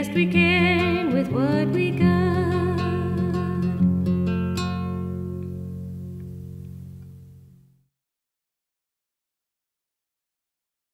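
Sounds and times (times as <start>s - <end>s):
acoustic guitar strumming: 0.0s - 7.8s.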